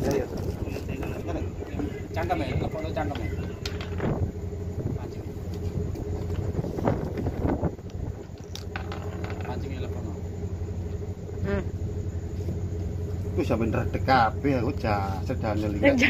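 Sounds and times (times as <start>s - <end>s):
small engine running: 0.0s - 16.0s.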